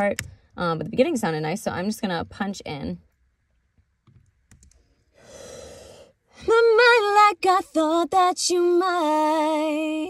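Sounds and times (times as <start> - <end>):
woman drawing breath: 5.1 - 6.1
woman singing: 6.4 - 10.0.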